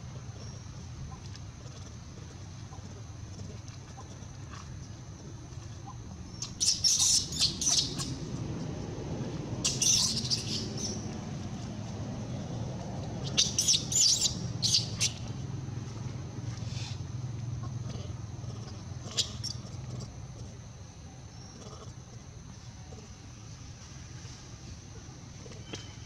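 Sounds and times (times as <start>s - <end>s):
infant monkey squeaks and squeals: 6.4s - 8.2s, 9.6s - 11.0s, 13.2s - 15.3s, 19.0s - 19.7s.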